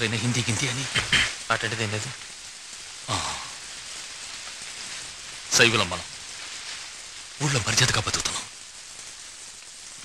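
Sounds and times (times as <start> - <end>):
steady rain hiss: 0.0 - 10.0.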